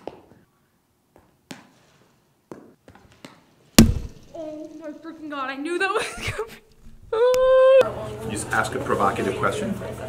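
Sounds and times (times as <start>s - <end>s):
loud heavy thump: 3.8s - 4.4s.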